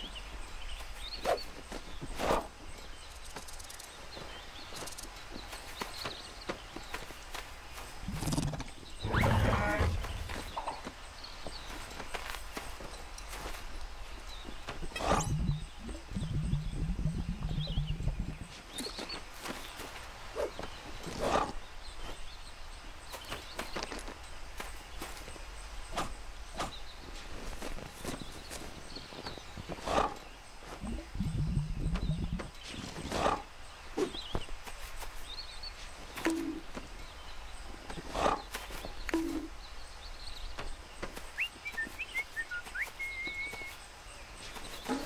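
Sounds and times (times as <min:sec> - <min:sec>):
faint high chirps: 0:41.3 - 0:43.8.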